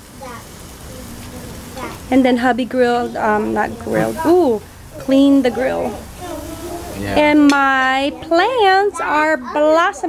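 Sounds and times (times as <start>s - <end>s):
food sizzling on a grill: 0.0s - 10.0s.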